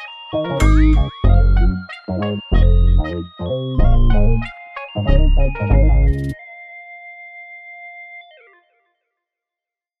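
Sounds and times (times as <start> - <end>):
held synthesizer chord: 0.0 - 8.8.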